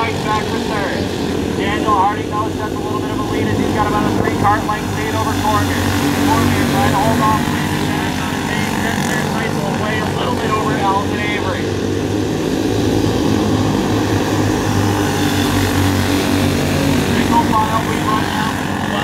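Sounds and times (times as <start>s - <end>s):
go-kart engines droning: 0.0s - 19.0s.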